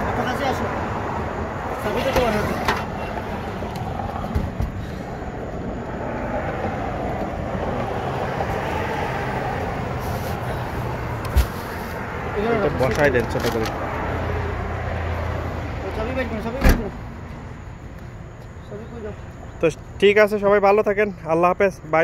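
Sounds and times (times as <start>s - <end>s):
road noise: 0.0s - 22.0s.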